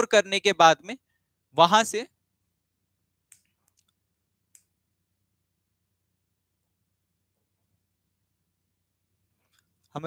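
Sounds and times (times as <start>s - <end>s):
faint sharp clicks: 3.3s - 4.7s.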